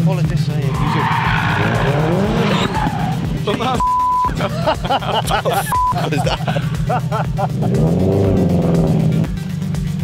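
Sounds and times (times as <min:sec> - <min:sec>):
rally car engine revving: 0:00.0 - 0:10.0
tyres squealing: 0:00.6 - 0:03.9
short steady beep: 0:03.8 - 0:04.3, 0:05.7 - 0:06.0
person speaking: 0:05.2 - 0:06.4.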